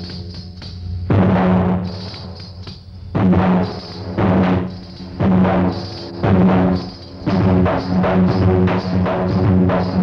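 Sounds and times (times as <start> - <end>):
high jingling bells: 0.0 - 10.0
booming large drum: 1.0 - 2.1, 3.1 - 10.0.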